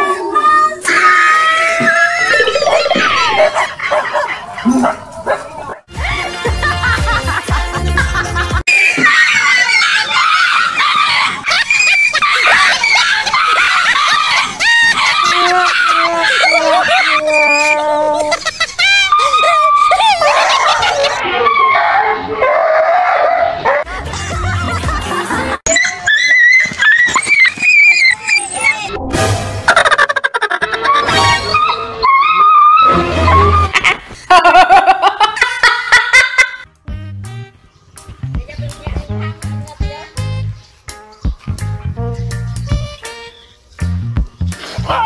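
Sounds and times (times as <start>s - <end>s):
dog barking and yelping: 2.3s - 5.9s, 9.1s - 23.9s, 30.8s - 33.7s
background music: 5.9s - 8.6s, 36.6s - 45.0s
music with heavy low beat: 5.9s - 8.6s, 36.8s - 43.1s, 43.8s - 44.6s.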